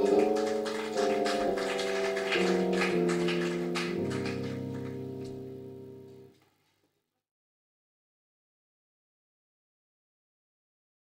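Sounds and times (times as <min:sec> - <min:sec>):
jazz band chords: 0:00.0 - 0:06.3.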